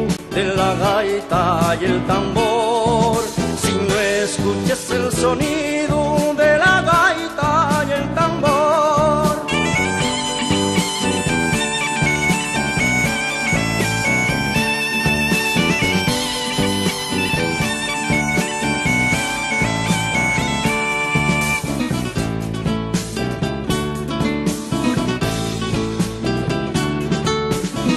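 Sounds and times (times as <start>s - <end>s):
bass and drums: 0.0s - 27.9s
bagpipe melody with drone: 9.6s - 21.8s.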